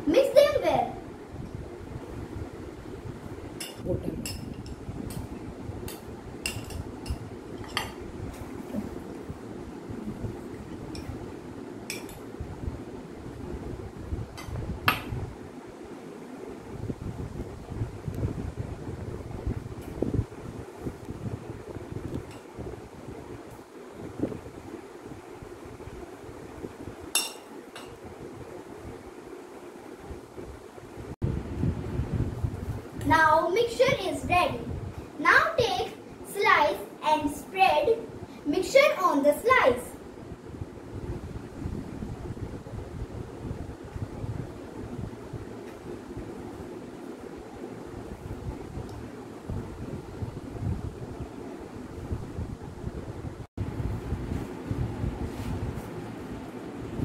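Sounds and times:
low background hum: 0.0s - 57.0s
glass bowl clink: 27.2s - 27.5s.

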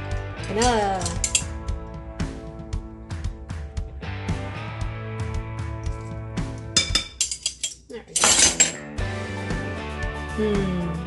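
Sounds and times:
background music: 0.0s - 11.0s
utensils clinking against bowl: 0.5s - 1.5s, 6.8s - 8.9s.

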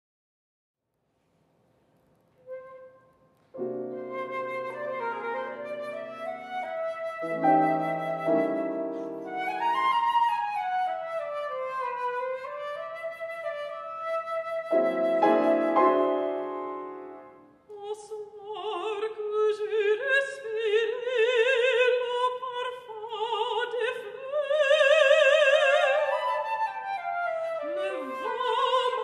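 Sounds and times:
flute melody: 2.4s - 17.6s, 25.1s - 29.0s
piano chords: 3.6s - 6.2s, 14.7s - 17.5s.

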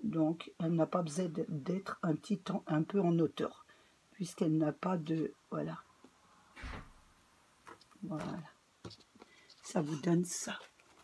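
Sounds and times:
paper rustling on card: 7.6s - 11.0s.

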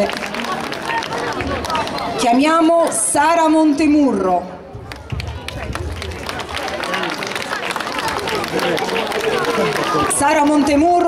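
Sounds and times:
audience applause: 0.0s - 2.2s, 4.8s - 11.0s
crowd chatter: 0.0s - 11.0s.

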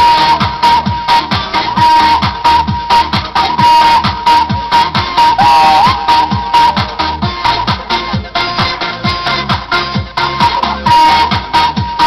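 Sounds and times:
electronic kick drum: 0.0s - 12.0s
high wavering melody: 5.2s - 7.2s.

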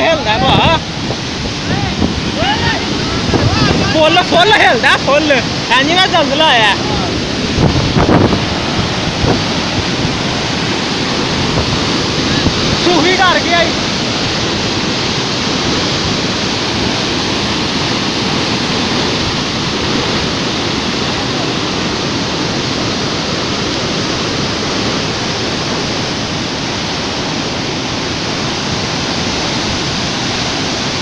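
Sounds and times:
roar of rushing water: 0.0s - 31.0s.

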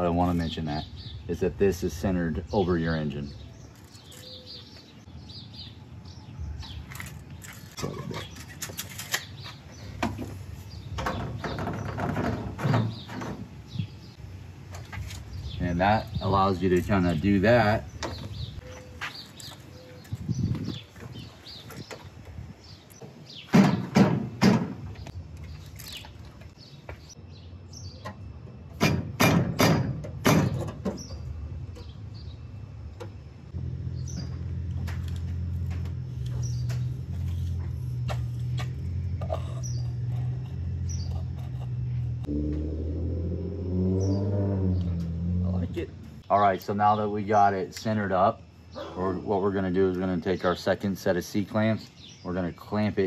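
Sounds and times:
birds chirping: 0.0s - 28.8s, 30.2s - 53.0s
knocks on aluminium frame: 23.5s - 24.9s, 28.7s - 31.1s
background music with bass: 41.8s - 46.2s.

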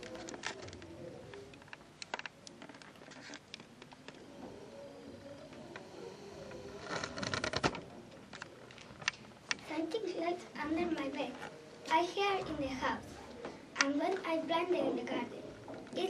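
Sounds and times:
faint low murmuring: 0.0s - 2.9s, 3.7s - 16.0s
small clicks and knocks: 0.0s - 4.3s
rustling and shuffling: 0.0s - 16.0s.

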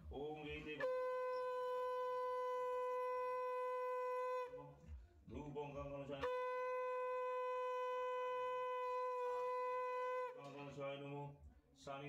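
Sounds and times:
conch shell blown: 0.2s - 5.1s, 5.9s - 10.9s.

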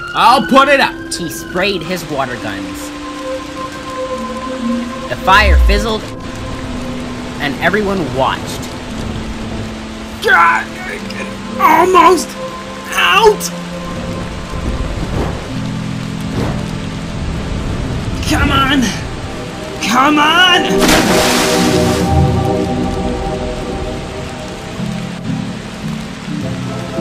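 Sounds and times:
background music low notes: 0.0s - 27.0s
water spraying onto fire: 5.1s - 12.3s, 12.9s - 27.0s.

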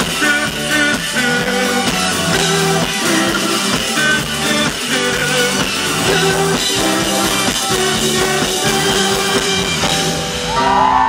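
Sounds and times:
drums: 0.0s - 11.0s
electric bass guitar: 0.0s - 11.0s
electric guitar: 0.0s - 11.0s.

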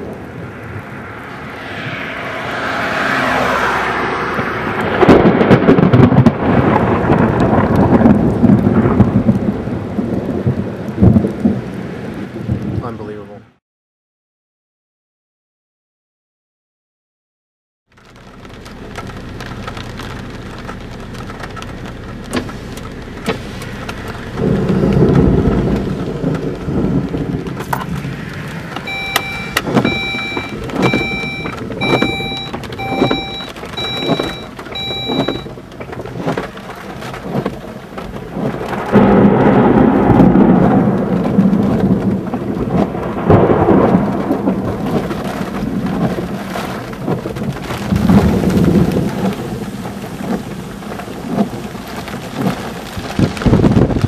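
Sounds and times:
rain on car roof: 0.0s - 1.8s, 2.9s - 13.4s, 17.9s - 54.0s
thunder rumbling: 0.0s - 13.0s, 18.4s - 54.0s
car warning chime beeping: 28.8s - 35.6s.

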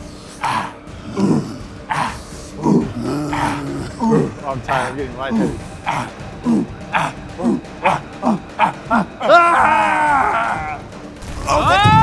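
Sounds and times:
man grunting: 0.4s - 10.7s.

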